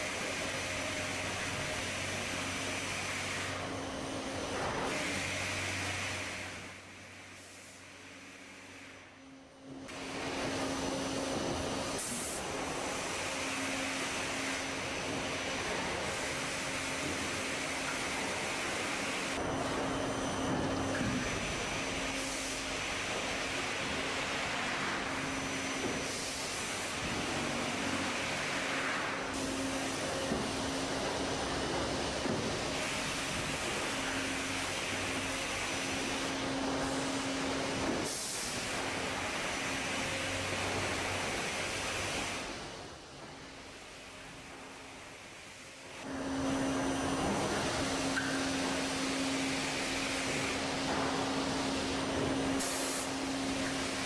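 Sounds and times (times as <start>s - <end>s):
mill machinery humming: 46.0s - 54.0s.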